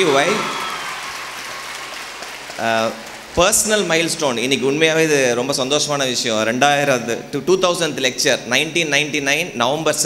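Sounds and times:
man's voice: 0:00.0 - 0:00.5, 0:02.6 - 0:10.0
audience applauding: 0:00.0 - 0:04.4.

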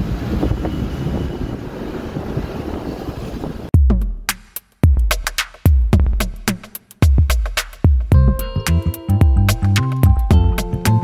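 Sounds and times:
wind buffeting microphone: 0:00.0 - 0:03.7
music with drum-machine beat: 0:03.8 - 0:11.0.

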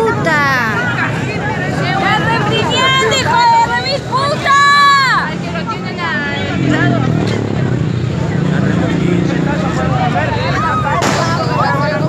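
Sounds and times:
people shouting and talking: 0:00.0 - 0:12.0.

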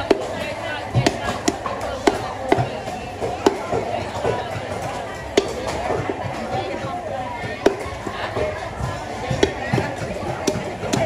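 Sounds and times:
chatter: 0:00.0 - 0:11.0
knife chopping on wooden block: 0:01.0 - 0:04.4, 0:09.3 - 0:11.0.

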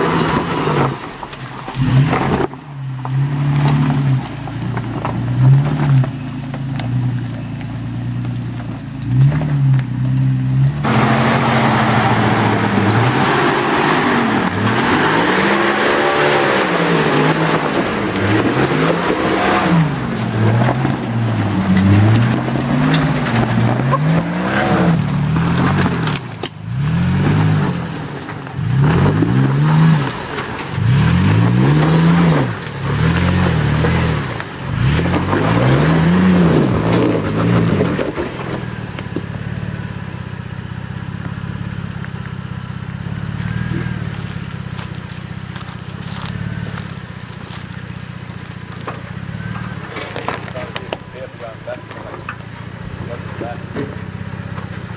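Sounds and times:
vehicle engine revving: 0:00.0 - 0:54.9.

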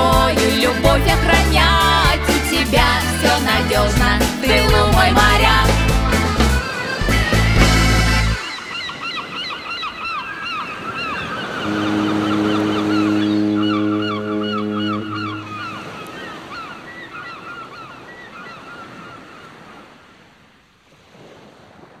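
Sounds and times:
sea waves washing: 0:00.0 - 0:22.0
seagulls calling: 0:04.5 - 0:19.9
ship's horn blast: 0:11.5 - 0:16.9.

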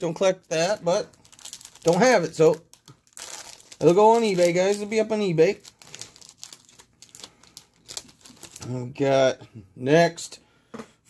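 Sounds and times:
card packaging crinkling: 0:00.5 - 0:08.7.

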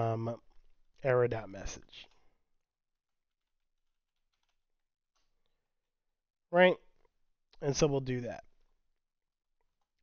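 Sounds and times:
faint keyboard typing: 0:03.1 - 0:05.6, 0:09.4 - 0:10.0.

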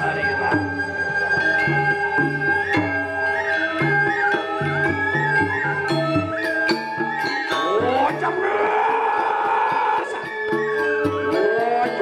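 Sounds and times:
gamelan metallophone strikes: 0:00.0 - 0:12.0
person giving high drawn-out cry: 0:07.8 - 0:10.2.

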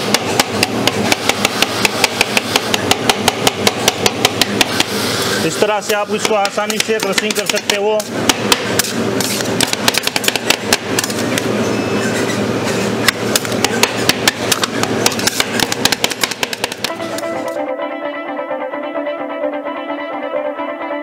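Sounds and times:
metal spatulas tapping on steel: 0:06.2 - 0:08.9
plucked guitar music: 0:16.9 - 0:21.0.

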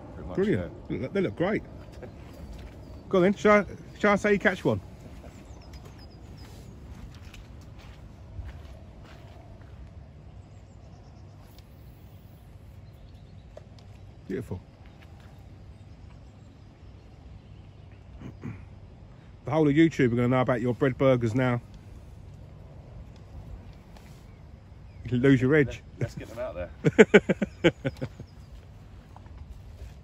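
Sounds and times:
low background rumble: 0:00.0 - 0:20.5.

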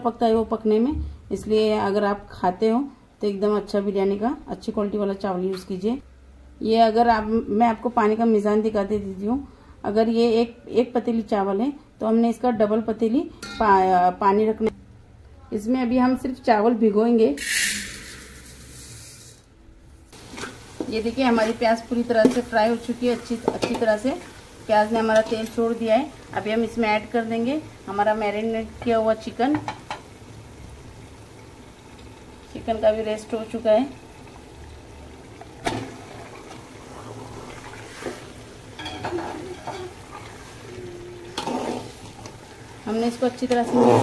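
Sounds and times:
onions sizzling in hot oil: 0:17.4 - 0:19.4, 0:20.1 - 0:44.0.

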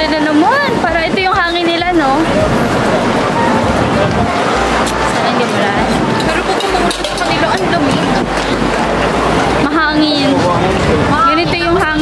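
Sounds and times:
faint voices: 0:00.0 - 0:12.0
roar of passing vehicles: 0:01.8 - 0:12.0.

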